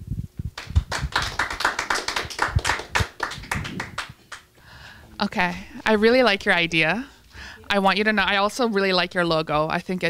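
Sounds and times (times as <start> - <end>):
small group clapping: 0.6 - 4.6.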